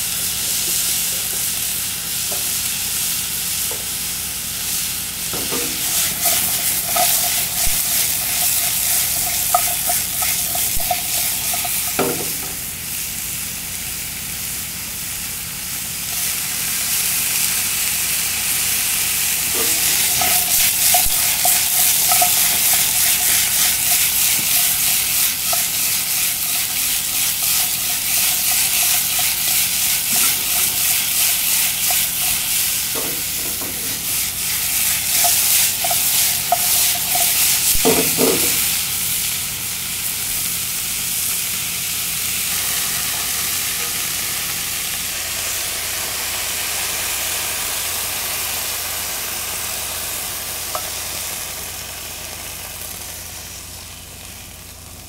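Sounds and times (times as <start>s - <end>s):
food sizzling in frying pan: 0.0s - 55.0s
utensil clinking against pan: 5.4s - 12.6s, 19.5s - 38.7s.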